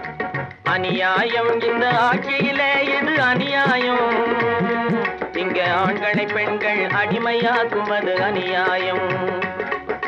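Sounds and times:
tabla strokes: 0:00.0 - 0:10.0
man singing: 0:00.7 - 0:09.7.

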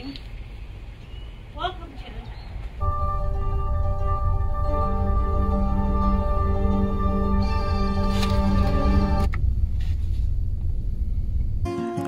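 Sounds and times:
freight train rumbling past: 0:01.5 - 0:12.0
background music: 0:02.8 - 0:09.4.

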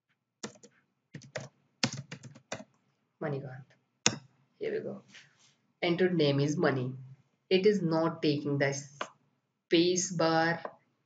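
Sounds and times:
typing on computer keyboard: 0:00.4 - 0:02.8.

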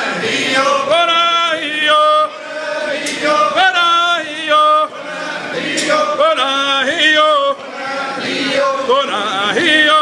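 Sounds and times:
group singing in unison: 0:00.0 - 0:10.0.

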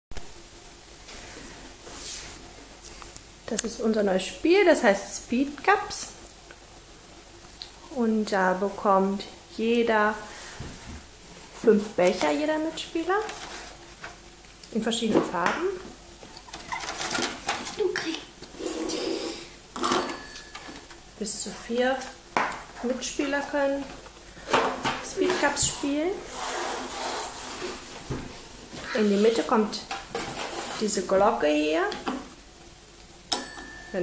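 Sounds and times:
soft hum-like sounds: 0:00.2 - 0:34.0
desk call bell ding: 0:19.8 - 0:20.7, 0:33.3 - 0:34.0.

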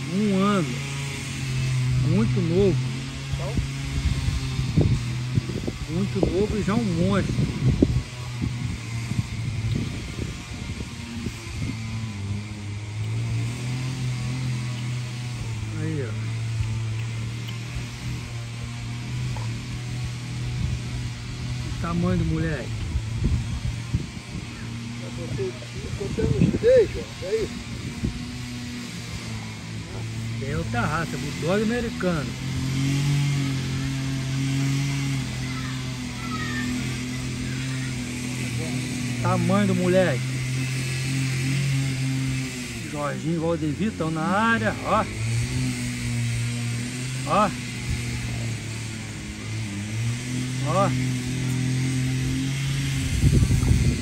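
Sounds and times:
engine droning: 0:00.0 - 0:54.0.

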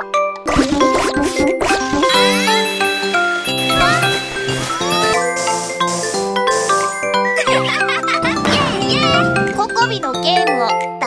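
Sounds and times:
cheerful background music: 0:02.0 - 0:11.0
bright chiming dings: 0:02.1 - 0:07.3.

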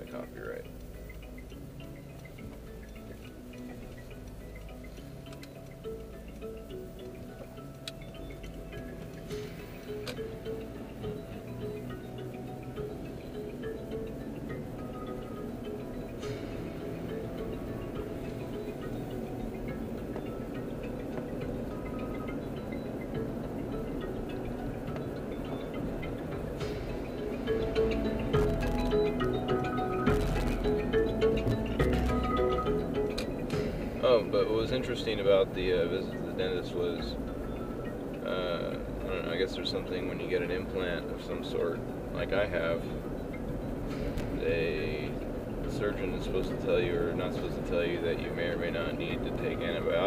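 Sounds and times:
chiming music on car stereo: 0:00.0 - 0:50.0
engine and road rumble: 0:00.0 - 0:50.0.

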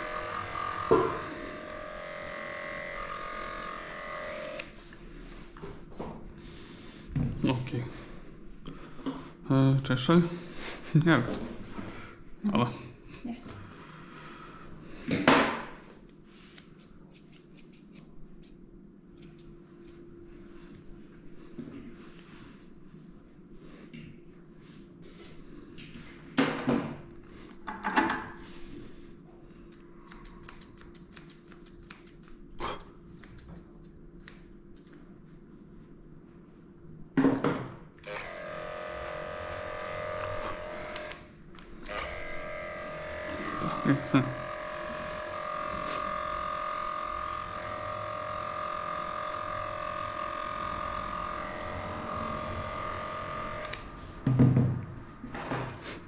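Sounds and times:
electric clippers humming: 0:00.0 - 0:04.8, 0:38.0 - 0:54.2.

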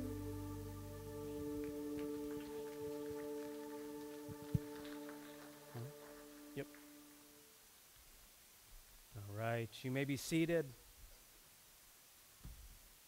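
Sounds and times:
held synth pad note: 0:00.0 - 0:07.6.

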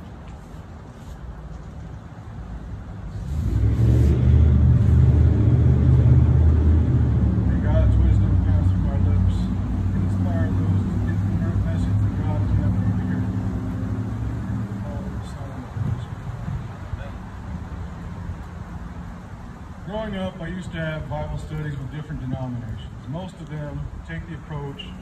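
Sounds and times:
vehicle engine rumbling: 0:00.0 - 0:25.0.

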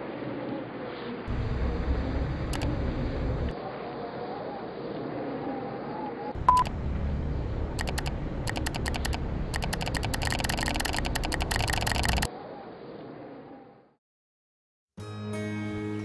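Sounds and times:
low rumble: 0:01.3 - 0:03.6, 0:06.4 - 0:12.3
rapid clicking: 0:07.7 - 0:12.3.

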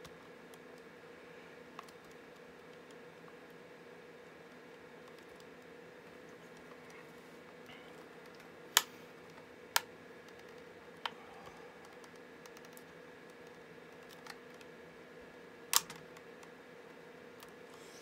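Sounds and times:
faint steady hum: 0:00.0 - 0:18.0.

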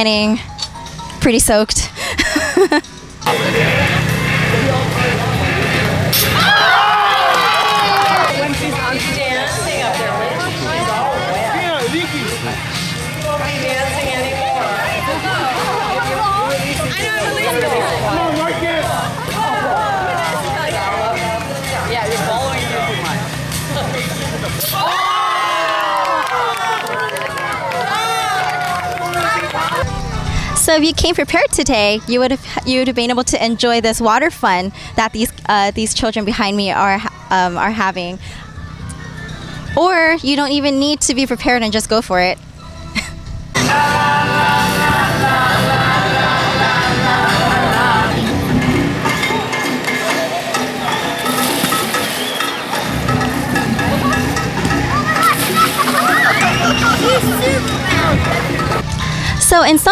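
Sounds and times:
background music: 0:00.0 - 0:59.9
children shouting and squealing: 0:24.6 - 0:30.3, 0:49.2 - 0:58.8
water splashing: 0:49.2 - 0:58.8
children's voices and shrieks: 0:53.8 - 0:58.4.

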